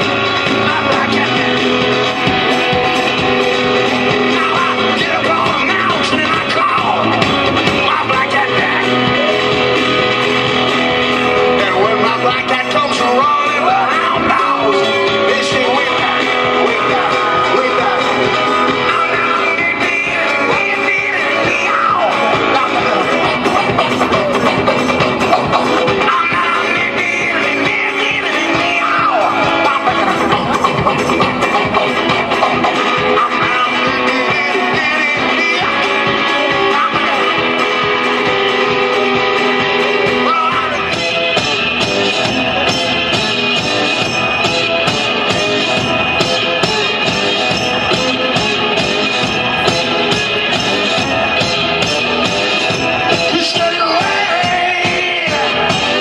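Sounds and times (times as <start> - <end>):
bass drum: 0.0 - 56.0
slide guitar blues: 0.0 - 56.0.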